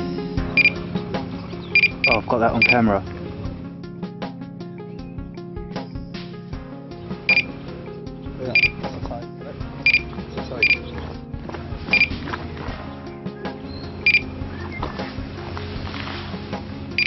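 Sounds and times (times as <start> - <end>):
background music: 0.0 - 17.0
bite alarm beeps: 0.6 - 0.8, 1.6 - 2.8, 7.3 - 7.6, 8.5 - 8.9, 9.8 - 11.0, 11.9 - 12.2, 13.8 - 14.9.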